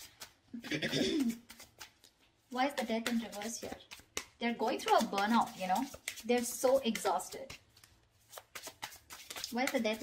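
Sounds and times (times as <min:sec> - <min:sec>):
person clearing throat: 0:00.6 - 0:01.4.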